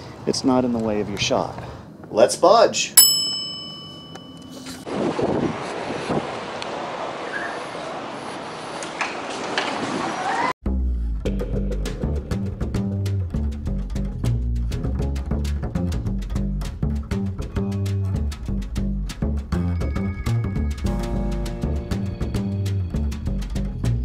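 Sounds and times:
bell-like ding: 3.0 - 4.8, 19.7 - 20.9
background music with double bass: 10.6 - 24.0.

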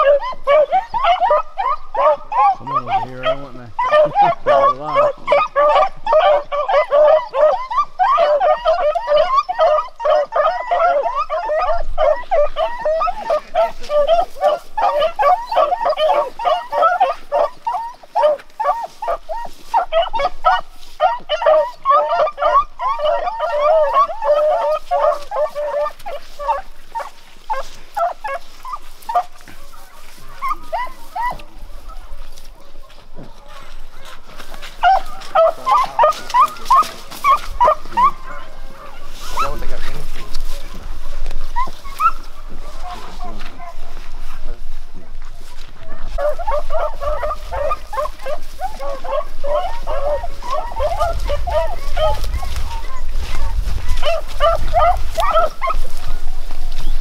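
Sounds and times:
pack of dogs barking and baying: 0.0 - 57.0.

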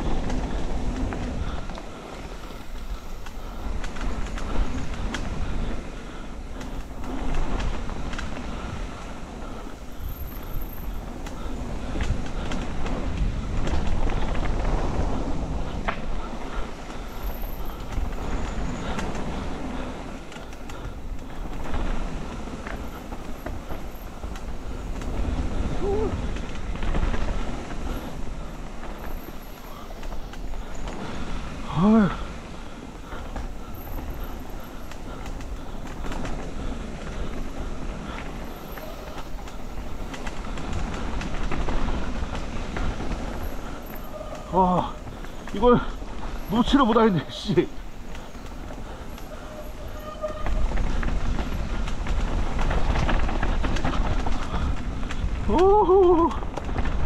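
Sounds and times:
bike rattling over bumps: 0.0 - 57.0
bike tyres rumbling on dirt: 0.0 - 57.0
wind noise on microphone: 0.0 - 57.0.

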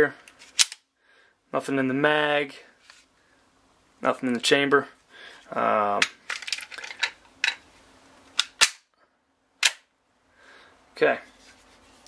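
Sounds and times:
pistol metallic clicks: 8.4 - 8.9, 9.6 - 9.9.

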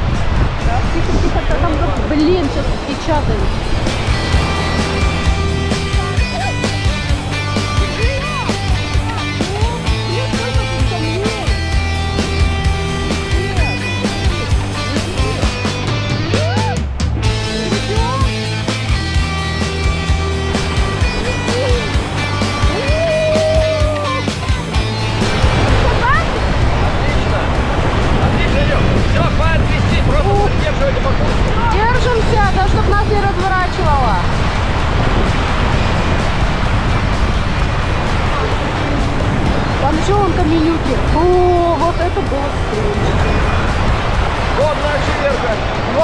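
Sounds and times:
fast river water rushing: 0.0 - 46.0
voices calling out: 2.3 - 27.6
rock music with a beat: 3.6 - 28.2, 34.3 - 39.8.

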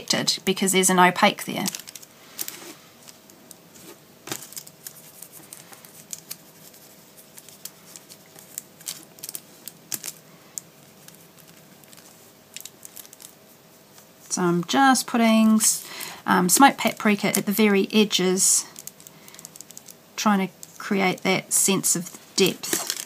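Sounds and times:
paintbrush on crackly tissue paper: 4.6 - 9.8, 10.6 - 14.4.

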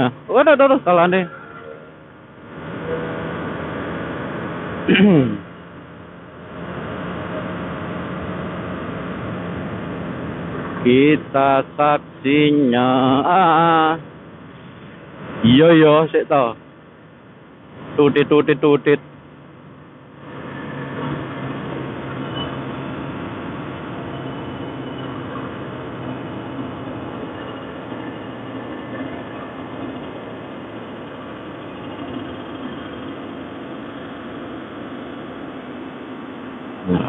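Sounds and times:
wind and road noise: 0.0 - 37.0.

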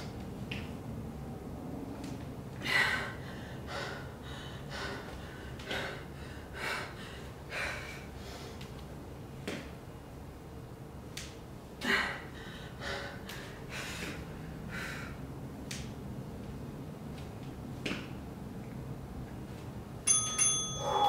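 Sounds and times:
timer bell-like chime: 20.1 - 21.0.

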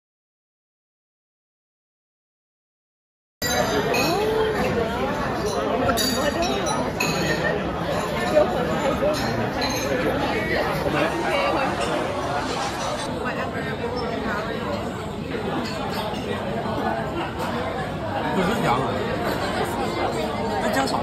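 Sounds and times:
chatter of many diners: 3.4 - 21.0.

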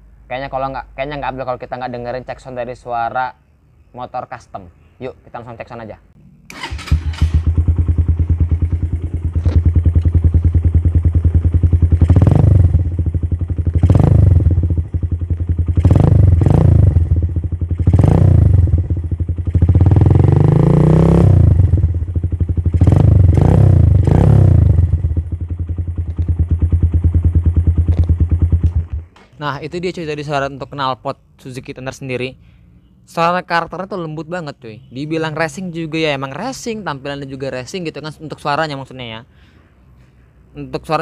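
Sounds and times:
motorcycle engine idling and revving: 6.2 - 29.2
motorcycle engine starting: 6.3 - 29.2.

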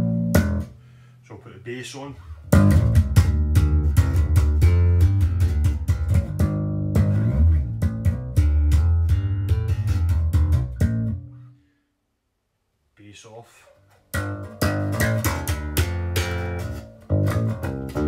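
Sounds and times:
electric bass plucked notes: 0.0 - 1.1, 2.3 - 11.6, 13.9 - 18.0.

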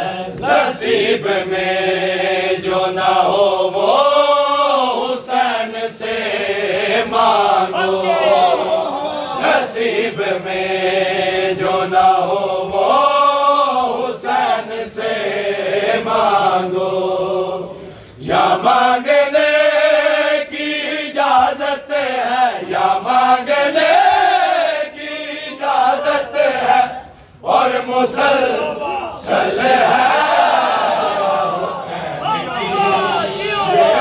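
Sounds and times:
men chanting a lament: 0.0 - 34.0.

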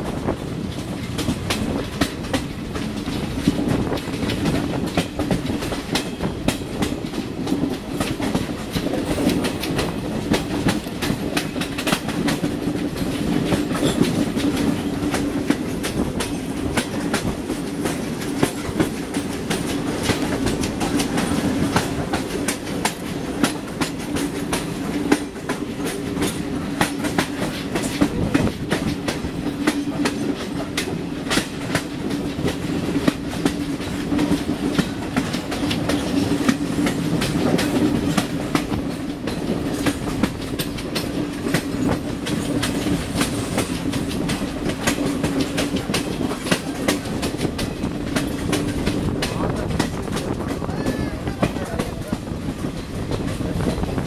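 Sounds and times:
low train drone: 0.0 - 54.0
train wheels clattering over rail joints: 0.0 - 54.0.

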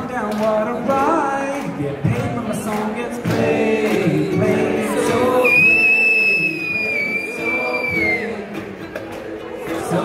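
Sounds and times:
high steady whistle: 5.4 - 8.2.

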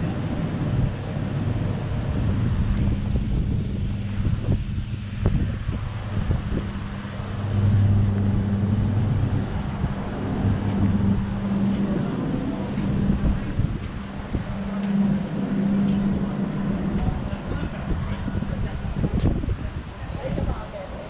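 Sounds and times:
low mechanical hum: 0.0 - 21.0
wind rumbling on microphone: 0.0 - 21.0.

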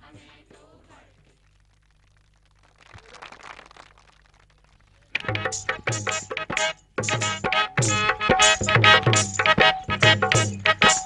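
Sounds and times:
faint low hum: 0.0 - 7.0.

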